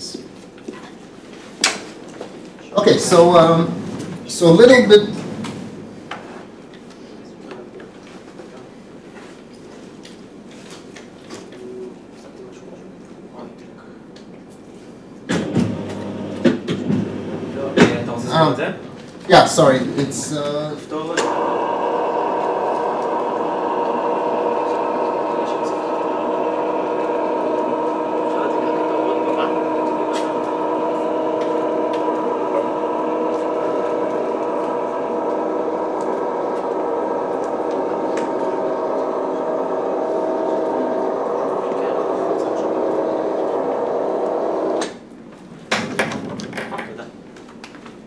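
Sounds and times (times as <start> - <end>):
electric motor humming: 15.4 - 18.6, 21.2 - 45.0.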